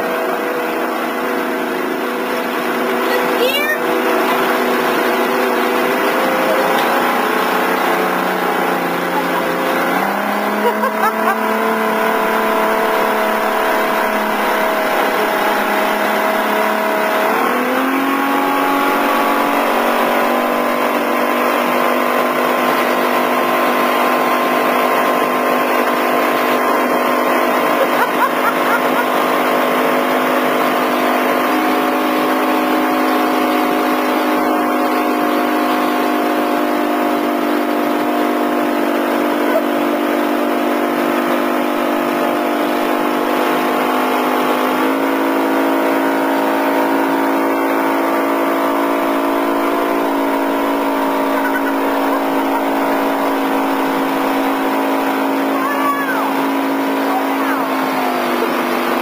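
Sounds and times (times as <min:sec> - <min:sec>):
motorboat engine running: 0:00.0 - 0:59.0.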